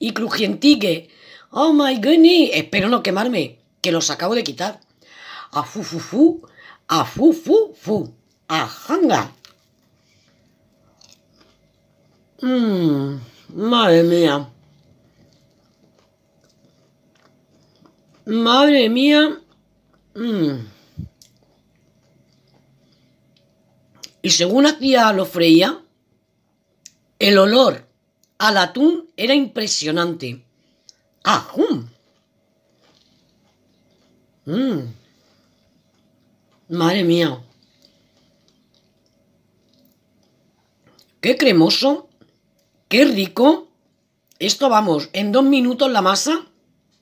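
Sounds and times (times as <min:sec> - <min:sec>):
crunching of crisp food: 0:08.0 - 0:12.4, 0:14.3 - 0:24.3, 0:30.8 - 0:41.2.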